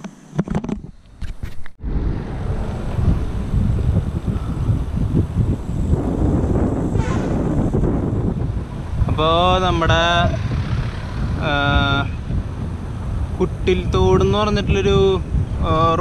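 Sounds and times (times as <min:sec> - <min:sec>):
wind buffeting microphone: 0:00.7 - 0:16.0.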